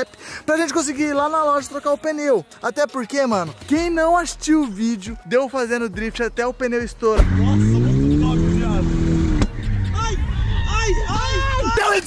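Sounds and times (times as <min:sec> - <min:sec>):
car engine revving high: 0:07.2 - 0:10.6
voices shouting: 0:09.6 - 0:12.0.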